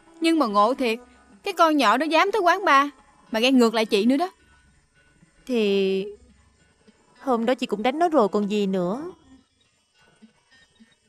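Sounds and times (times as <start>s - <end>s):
faint low background sounds: 0.0s - 11.0s
woman's voice: 0.2s - 4.3s, 5.5s - 6.2s, 7.2s - 9.2s.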